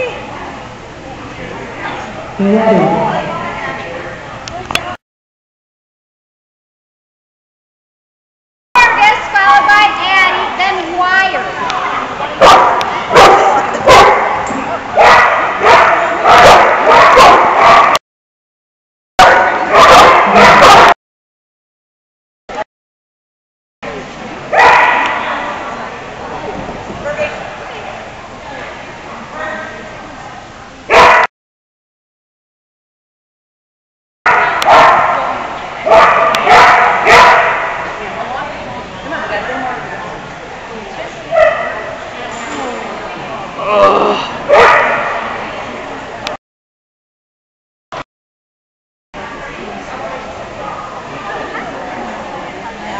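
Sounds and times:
dog barking: 12.4s - 14.4s, 15.0s - 18.0s, 19.2s - 21.0s, 24.5s - 25.1s, 30.9s - 31.3s, 34.3s - 35.3s, 35.9s - 37.8s, 41.3s - 41.8s, 44.5s - 45.2s.

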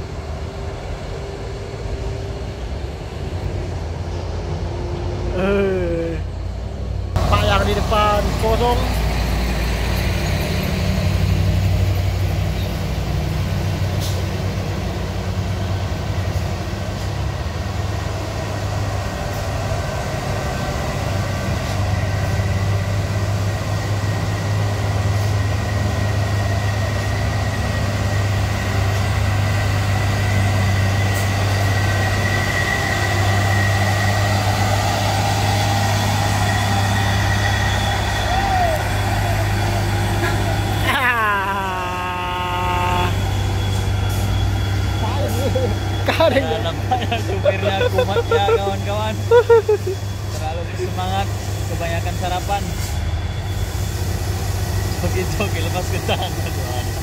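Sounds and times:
diesel truck engine drone: 0.0s - 57.0s
voices: 38.1s - 43.3s, 44.9s - 52.8s, 55.0s - 57.0s.

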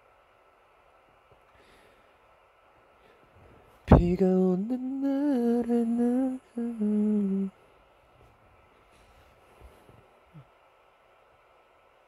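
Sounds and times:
man humming: 3.9s - 7.6s.

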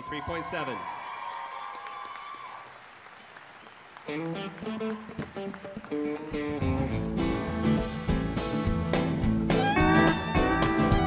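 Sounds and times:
audience applauding and cheering: 0.0s - 7.2s
long held note: 9.6s - 11.0s.

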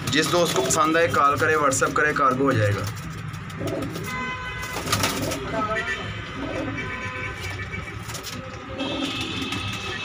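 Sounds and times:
pigeons cooing: 3.3s - 4.2s, 4.8s - 9.8s.

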